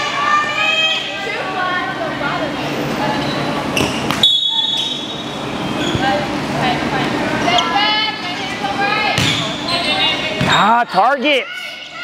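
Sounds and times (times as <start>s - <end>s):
voices echoing in gymnasium: 0.0s - 12.0s.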